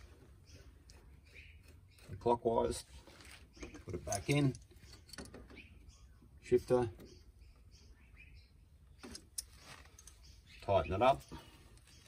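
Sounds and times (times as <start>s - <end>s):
faint bird chirps: 0.0s - 12.0s.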